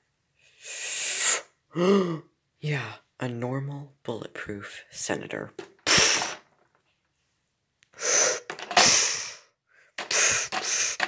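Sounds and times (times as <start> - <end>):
breathy hissing from mouth: 0.4 - 2.1, 5.9 - 6.5, 7.9 - 11.0.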